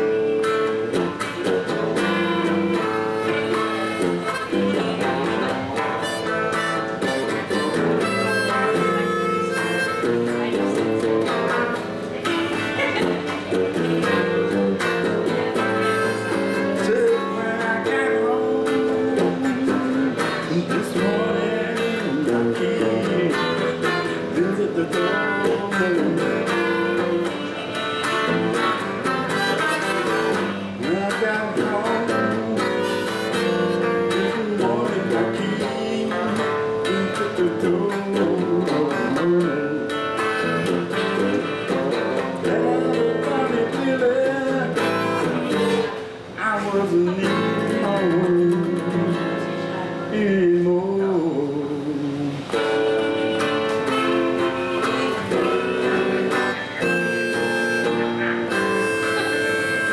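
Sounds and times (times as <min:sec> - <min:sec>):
harmonica bending notes: 0:00.0 - 0:46.4, 0:52.4 - 0:59.9
electric guitar rhythm: 0:00.0 - 0:59.9.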